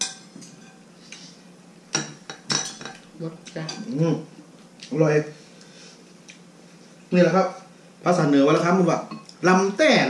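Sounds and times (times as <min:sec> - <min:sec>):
metal spoon clinking against bowl: 0:02.0 - 0:03.0.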